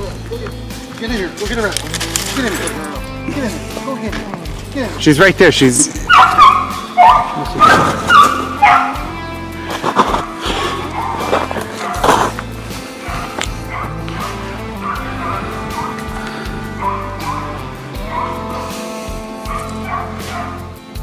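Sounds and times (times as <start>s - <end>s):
background music: 0.0s - 21.0s
hunting dogs baying: 5.9s - 20.9s.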